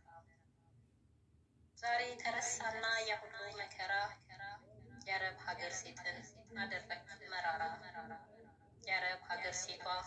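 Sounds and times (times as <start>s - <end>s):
woman speaking: 1.8s - 4.3s, 5.0s - 8.2s, 8.8s - 10.0s.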